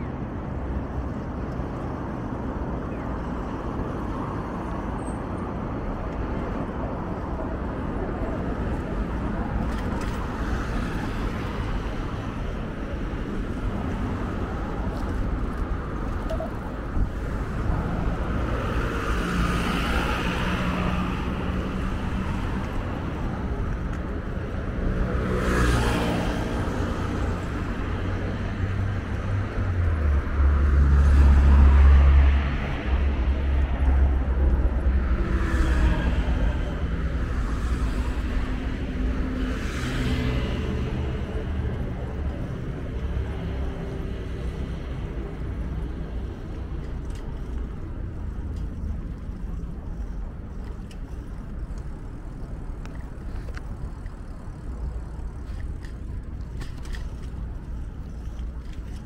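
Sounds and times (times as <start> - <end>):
cars passing: 0.0 - 59.0.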